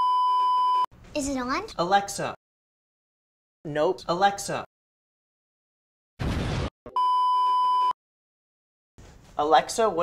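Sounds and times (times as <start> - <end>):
censor bleep tone: 0.0 - 0.8, 6.9 - 8.0.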